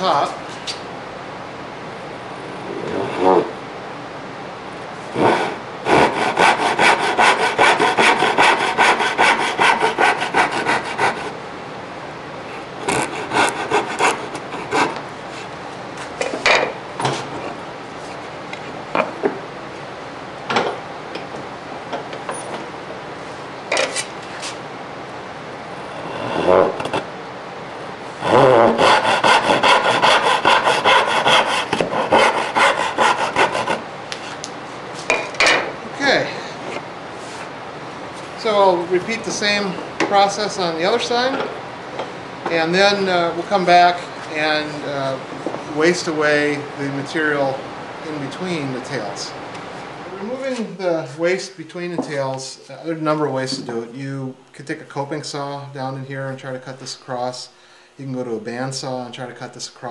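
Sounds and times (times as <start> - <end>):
hand saw strokes: 5.2 - 11.4, 12.8 - 15.5, 28.2 - 34.4.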